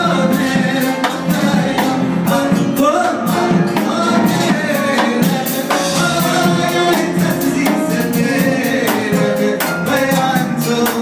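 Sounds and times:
klezmer band playing: 0.0 - 11.0
man singing: 0.0 - 11.0.

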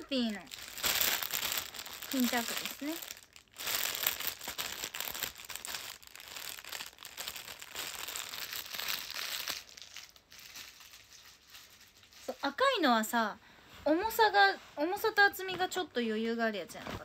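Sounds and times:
plastic packaging crinkling: 0.0 - 12.8.

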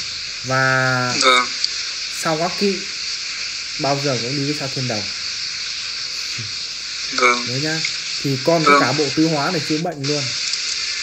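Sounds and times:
phone line hiss: 0.0 - 11.0
person speaking a word: 7.2 - 10.3.

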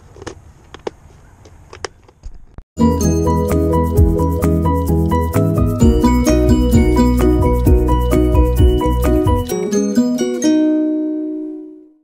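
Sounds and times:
music with a steady beat: 2.8 - 10.1.

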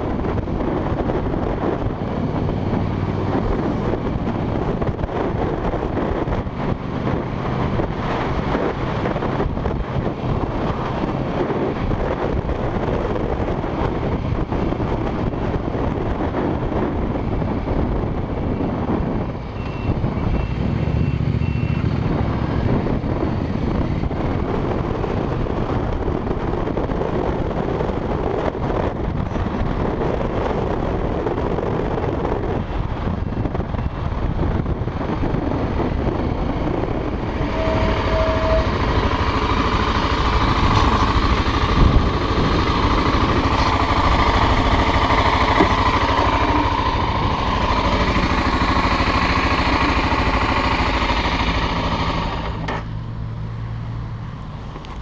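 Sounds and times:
motorcycle engine: 0.0 - 55.0
road noise: 0.0 - 55.0
wind noise: 0.0 - 55.0.

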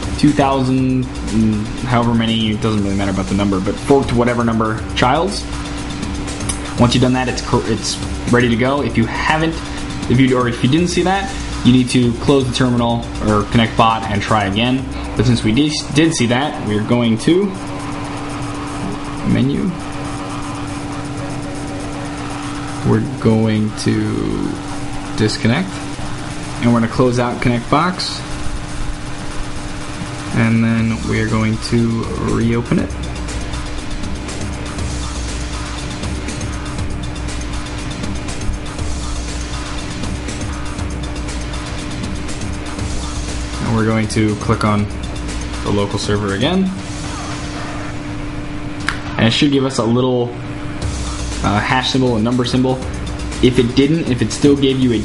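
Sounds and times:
steady background hum: 0.0 - 55.0
man's voice: 0.1 - 5.5, 6.6 - 17.6, 22.8 - 25.8, 26.6 - 28.3, 30.3 - 33.0, 43.6 - 44.9, 45.6 - 46.8, 51.4 - 55.0
sharp click: 48.8 - 49.1.

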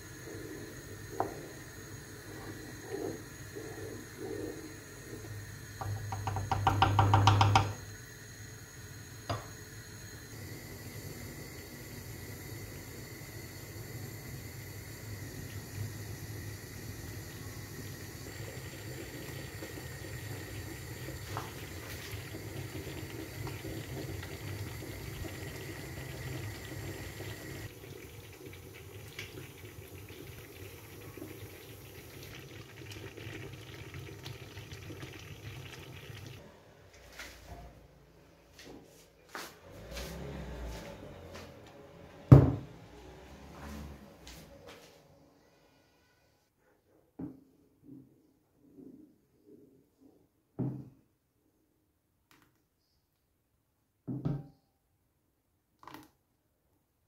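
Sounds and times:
jam bubbling: 0.0 - 7.8, 15.3 - 36.4
pot of water boiling: 0.0 - 36.4.

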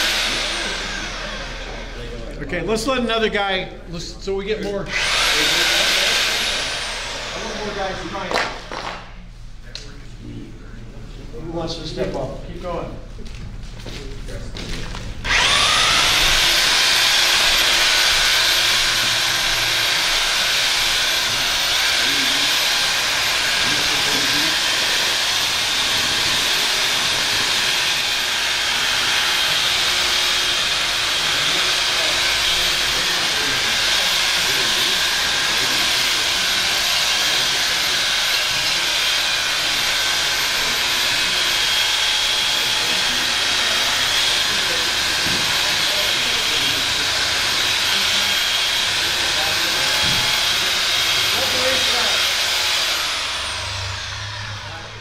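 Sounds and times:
electric drill mixing paddle whine: 0.0 - 9.2, 15.0 - 55.0.

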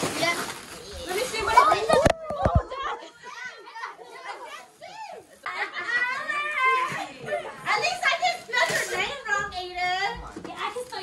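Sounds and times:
indistinct chatter with children: 0.0 - 11.0.

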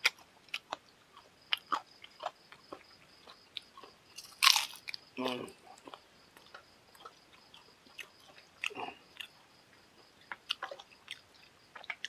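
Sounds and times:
man chewing food: 0.0 - 12.0.

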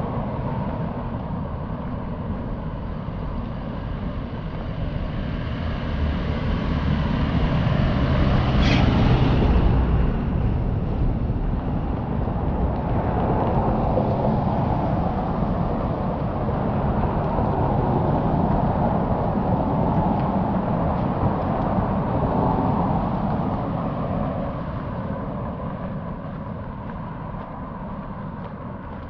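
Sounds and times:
road traffic passing: 0.0 - 29.0.

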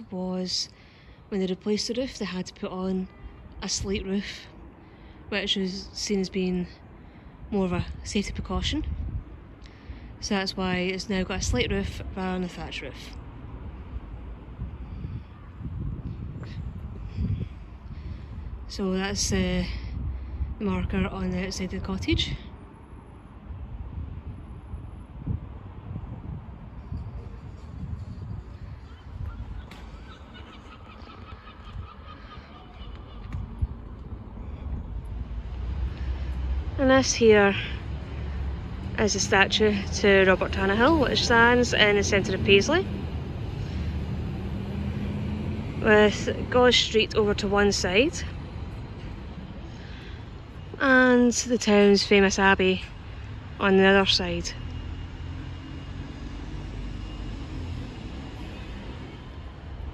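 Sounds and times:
distant road traffic: 0.0 - 59.9.

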